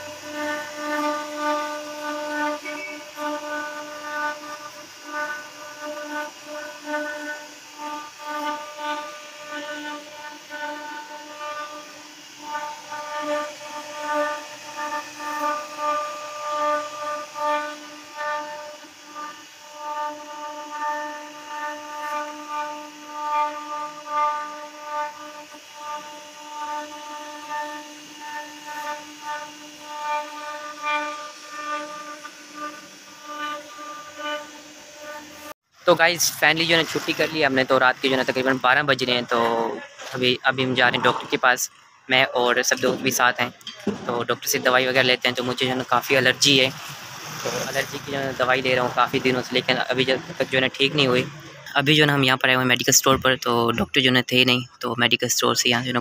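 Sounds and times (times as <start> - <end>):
router spindle whining: 0.0 - 53.8.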